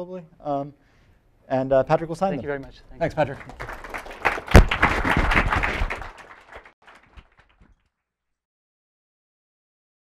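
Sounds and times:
audience applauding: 3.0s - 7.8s
loud knock: 4.4s - 5.8s.

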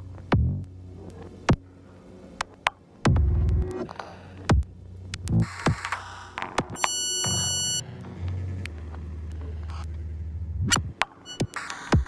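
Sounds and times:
low synthesized bass drone: 0.0s - 11.6s.

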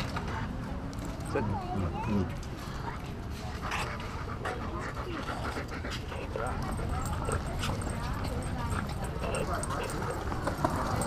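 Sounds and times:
dog panting: 2.7s - 11.0s.

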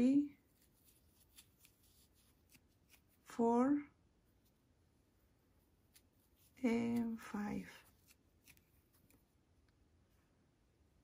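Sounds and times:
crochet hook ticks and rustles: 0.5s - 3.2s, 5.9s - 9.2s.

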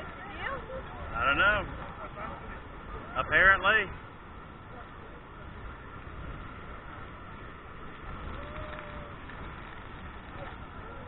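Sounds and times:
churning water: 0.0s - 11.0s
muffled waterfall rush: 0.1s - 11.0s.

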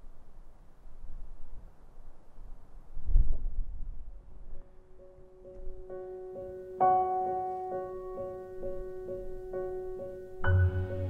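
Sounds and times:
wind buffeting microphone: 2.4s - 4.8s
soft piano music: 4.0s - 11.0s.

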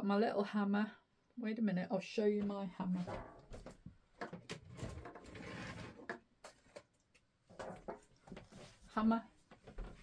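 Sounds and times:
rustling of handled things: 2.4s - 10.0s.

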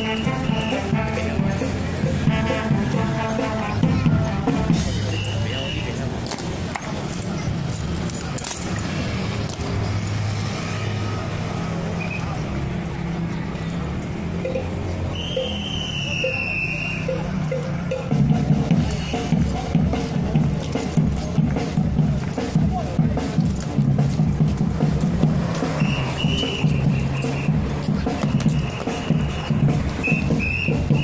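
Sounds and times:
crowd voices: 0.0s - 31.0s
rifles clacking: 6.2s - 8.8s.

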